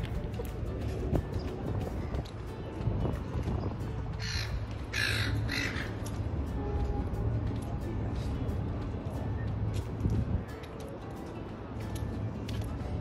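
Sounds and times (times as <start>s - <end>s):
background music: 0.0s - 13.0s
bird calling: 4.2s - 6.0s.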